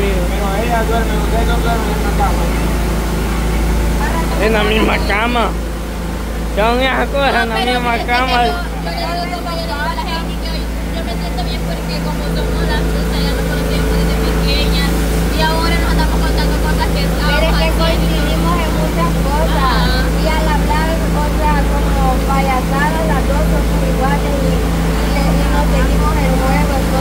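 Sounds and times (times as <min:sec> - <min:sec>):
people talking: 0:00.0 - 0:05.7, 0:06.4 - 0:27.0
faint constant hum: 0:00.0 - 0:27.0
low rumble: 0:00.0 - 0:27.0.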